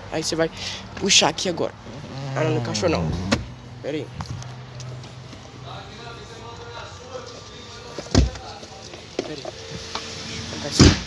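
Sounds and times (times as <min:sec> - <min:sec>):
faint voices: 0:03.9 - 0:10.9.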